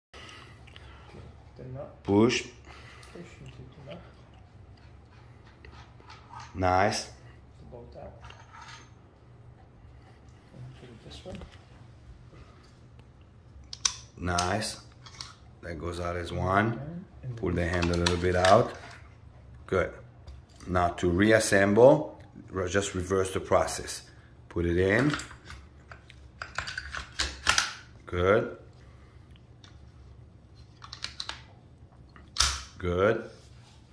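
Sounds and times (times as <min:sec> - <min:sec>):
pistol parts clicking: 0:13.7 - 0:15.4, 0:25.0 - 0:27.8, 0:32.2 - 0:32.7.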